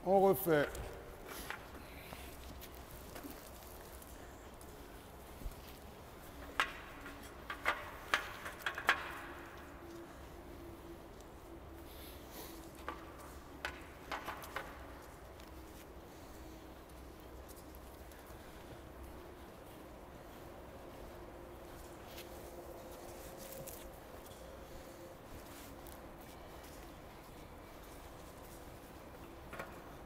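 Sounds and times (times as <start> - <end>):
horse hooves on sand: 0.1 - 30.0.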